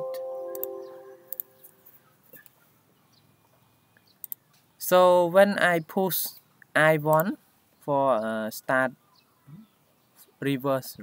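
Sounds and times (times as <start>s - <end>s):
computer warning chime: 0.0s - 1.4s
mouse clicks: 0.5s - 1.5s.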